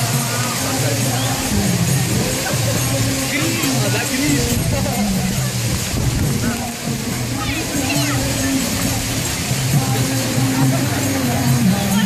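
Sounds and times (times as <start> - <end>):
crowd voices: 0.0 - 12.0
outdoor noise hiss: 0.0 - 12.0.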